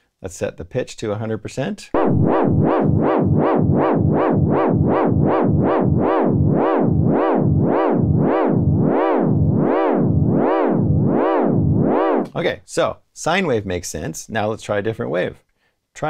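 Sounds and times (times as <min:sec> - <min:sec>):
sampled note with siren-like pitch wobble: 0:02.0 - 0:12.3.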